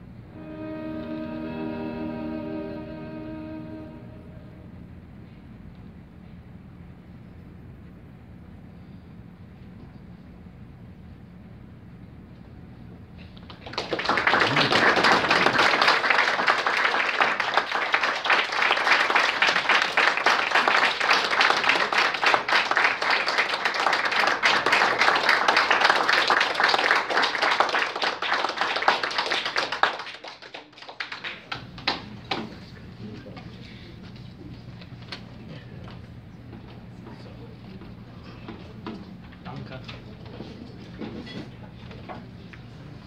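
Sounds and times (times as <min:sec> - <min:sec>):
small audience applauding: 0:13.2 - 0:33.4.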